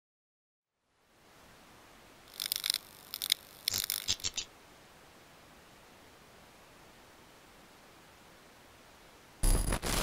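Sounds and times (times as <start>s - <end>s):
faint steady hiss: 0.7s - 10.0s
crackly high-pitched glitch bursts: 2.3s - 4.5s, 9.4s - 10.0s.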